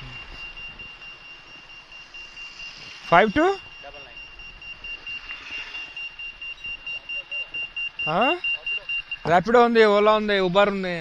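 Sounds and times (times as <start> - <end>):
high-pitched electronic beep tone: 0.0 - 10.8.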